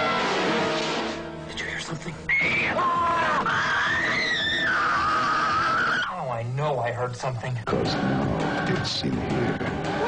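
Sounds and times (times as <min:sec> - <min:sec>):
woman screaming: 0:02.3 - 0:06.1.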